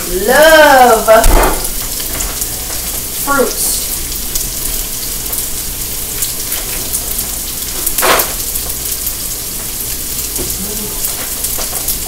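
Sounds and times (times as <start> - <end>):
chicken sizzling in oil: 0.0 - 12.0.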